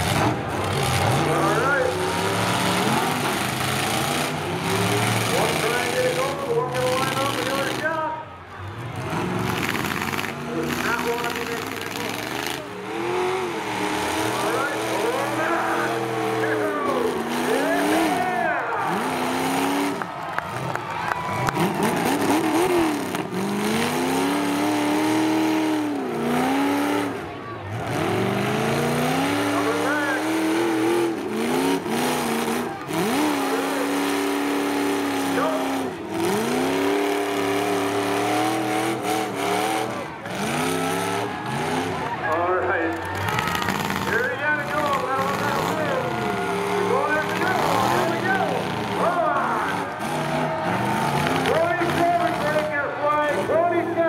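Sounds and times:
car engines revving: 0.0s - 54.0s.

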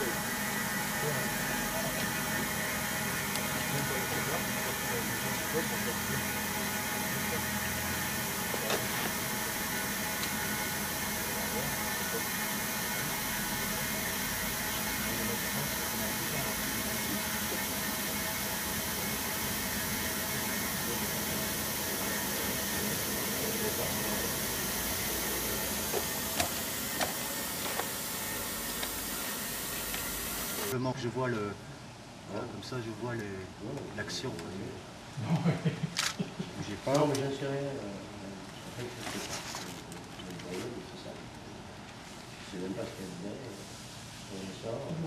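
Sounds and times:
compressed air hissing through hose: 0.0s - 30.7s.

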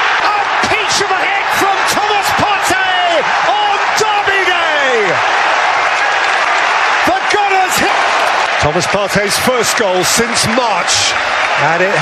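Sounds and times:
commentator shouting: 0.0s - 5.3s, 7.0s - 8.0s
stadium crowd roaring and cheering: 0.0s - 12.0s.

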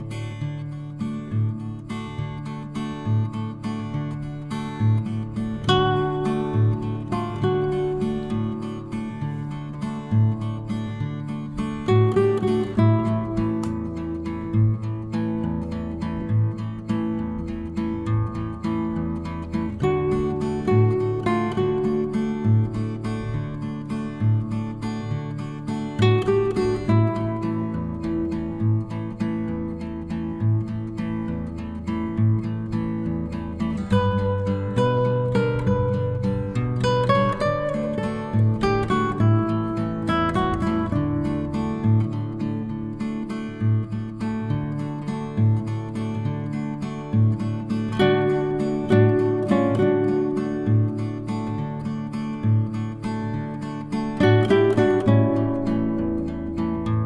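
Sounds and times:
acoustic guitar strummed: 0.0s - 57.0s.

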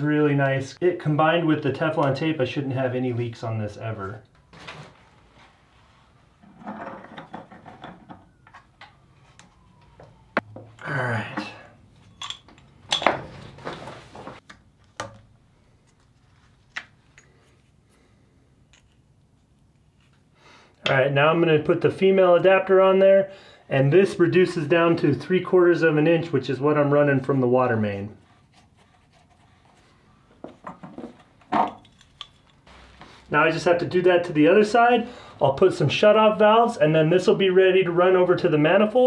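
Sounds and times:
metal tool clinking on pipe fitting: 12.0s - 13.1s, 17.1s - 17.4s.

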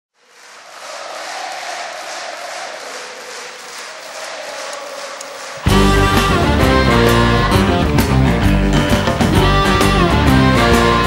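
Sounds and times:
concert audience applauding: 0.2s - 11.0s.

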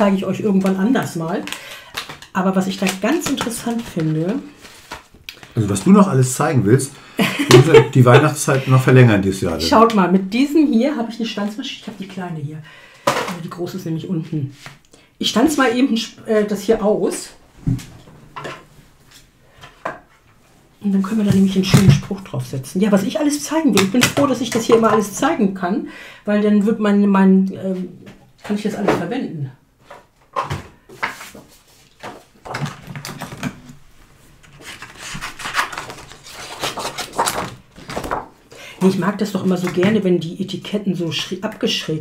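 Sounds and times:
paper rustling and scraping: 2.8s - 5.9s, 31.0s - 33.4s, 34.3s - 38.3s.

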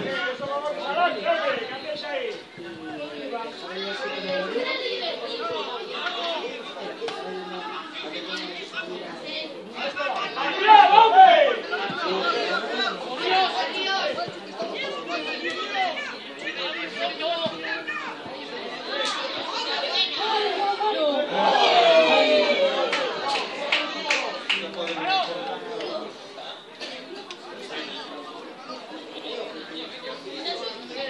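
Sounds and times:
people talking over one another: 0.0s - 31.0s
loud shout: 10.3s - 12.6s, 18.9s - 23.3s.

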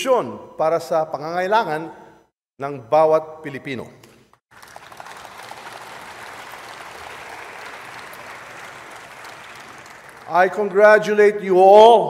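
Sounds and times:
audience applause: 4.5s - 11.1s.

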